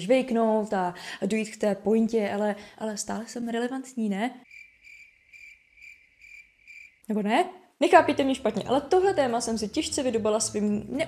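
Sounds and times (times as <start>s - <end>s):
crickets chirping: 4.5s - 7.0s.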